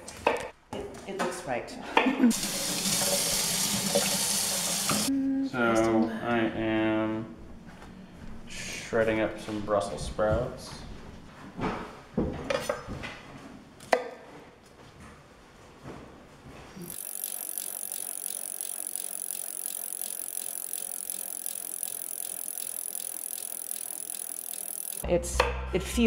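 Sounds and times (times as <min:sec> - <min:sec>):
fast ratcheting clatter: 0:16.9 - 0:25.0.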